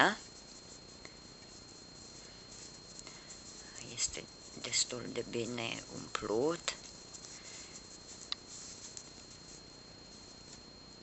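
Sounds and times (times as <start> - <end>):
hands rustling yarn: 0.0 - 10.8.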